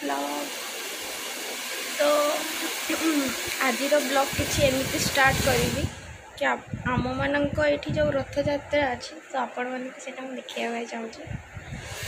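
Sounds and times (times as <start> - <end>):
steady rushing noise: 1.9 - 9.0, 11.2 - 12.0.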